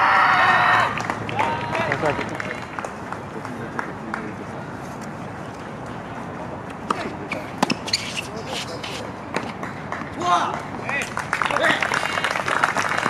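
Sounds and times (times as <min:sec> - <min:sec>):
tennis racket hitting ball: 0:06.8 - 0:08.6
ball bouncing: 0:06.9 - 0:08.0.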